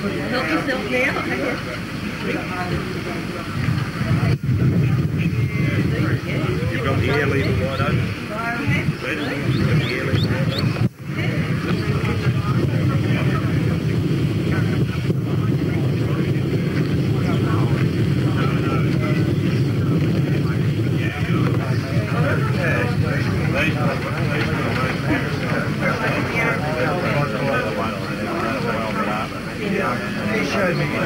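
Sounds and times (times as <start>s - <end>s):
indistinct chatter: 0.0s - 31.0s.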